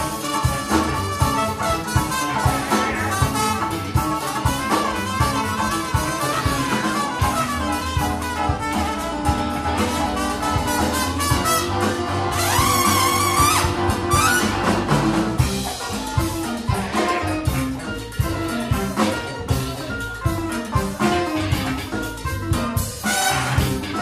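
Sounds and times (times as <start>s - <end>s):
drums: 0.0s - 24.0s
electric guitar: 0.0s - 24.0s
saxophone: 0.0s - 24.0s
trumpet: 0.0s - 24.0s.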